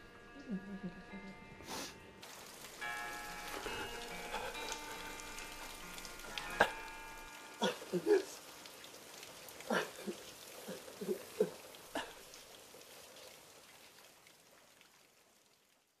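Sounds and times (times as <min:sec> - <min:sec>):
rain hissing: 0:01.3 - 0:15.6
man sobbing and laughing: 0:07.6 - 0:08.4, 0:09.7 - 0:12.1.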